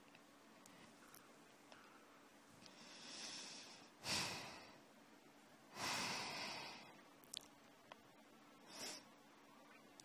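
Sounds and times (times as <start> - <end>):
person breathing: 0.6 - 4.9, 5.7 - 7.0, 8.6 - 9.1.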